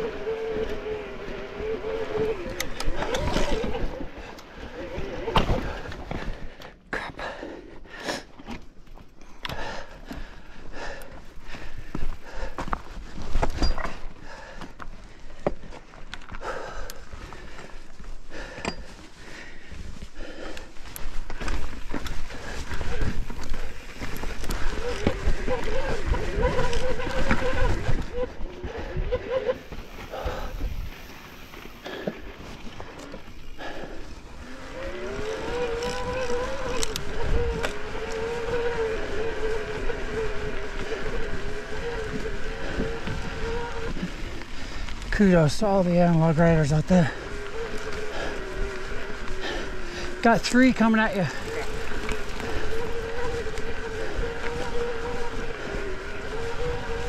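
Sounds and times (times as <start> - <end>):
electric bike motor whining: 0.0 - 5.9, 16.4 - 57.0
bike rattling over rocks: 0.0 - 6.4, 17.0 - 28.6, 29.2 - 57.0.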